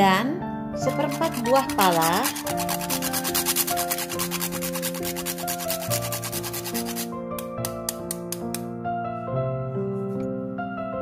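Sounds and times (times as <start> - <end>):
nutmeg rasping on metal grater: 0.8 - 7.1.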